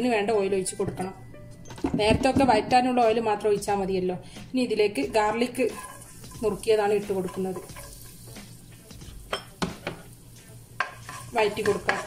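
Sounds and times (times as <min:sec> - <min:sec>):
garlic sizzling in hot oil: 0:05.4 - 0:12.0.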